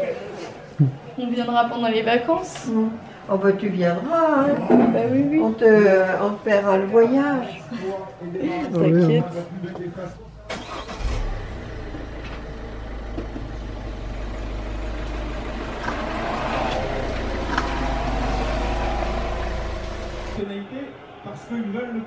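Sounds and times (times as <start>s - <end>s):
car engine rumbling: 10.2s - 20.4s.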